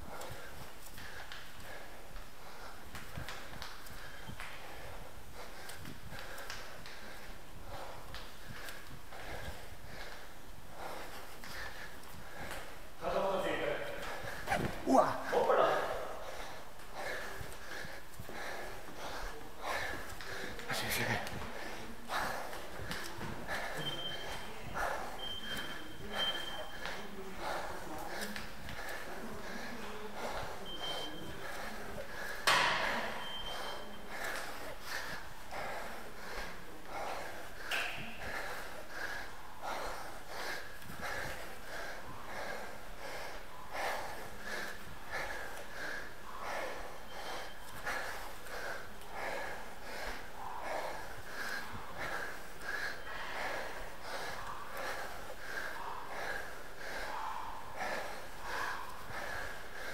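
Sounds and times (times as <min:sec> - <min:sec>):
footsteps on concrete stairs: 0:00.0 - 0:12.8, 0:13.4 - 0:59.9
person breathing hard: 0:00.0 - 0:59.9.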